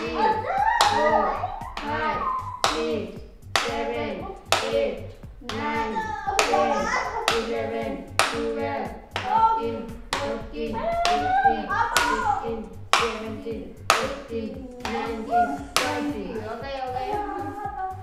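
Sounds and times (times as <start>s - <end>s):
person crying out: 0.2s - 2.6s.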